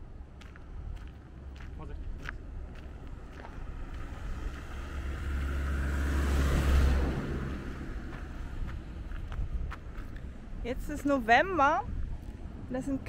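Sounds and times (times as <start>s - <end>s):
car passing by: 2.9s - 10.3s.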